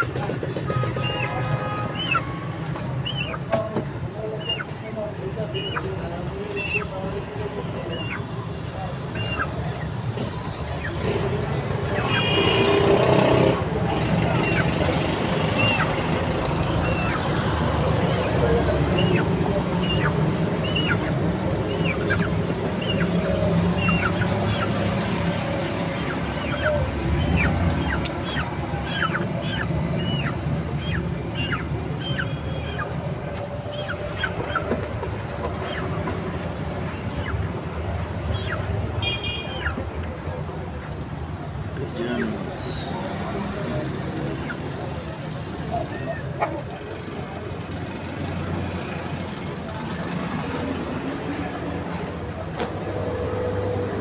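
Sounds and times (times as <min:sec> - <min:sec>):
street traffic rumble: 0:00.0 - 0:54.0
small birds chirping: 0:14.1 - 0:24.9, 0:25.5 - 0:34.7.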